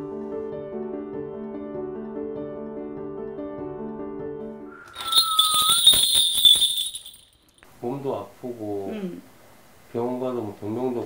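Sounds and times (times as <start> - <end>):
small brass bells jingling: 4.9 - 7.6.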